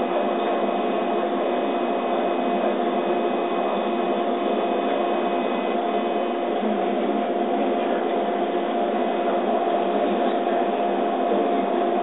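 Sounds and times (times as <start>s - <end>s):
laser cutter hum and hiss: 0.0s - 12.0s.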